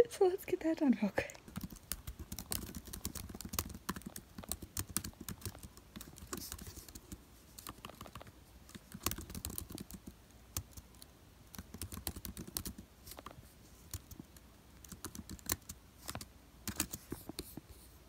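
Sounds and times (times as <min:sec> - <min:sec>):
laptop keyboard typing: 0:01.4 - 0:17.7.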